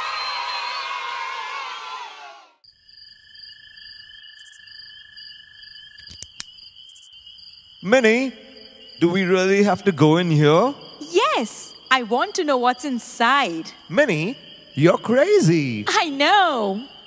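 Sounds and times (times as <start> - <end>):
crickets chirping: 2.6 - 17.0
sharp clicks: 6.0 - 7.1.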